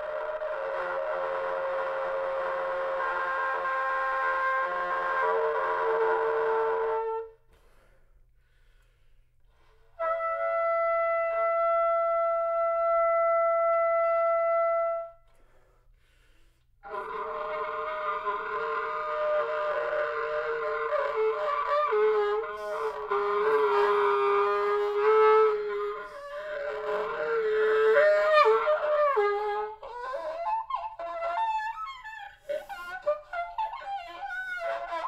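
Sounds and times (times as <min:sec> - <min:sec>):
solo trumpet playing held notes: 0:00.0 - 0:07.4, 0:16.9 - 0:35.0.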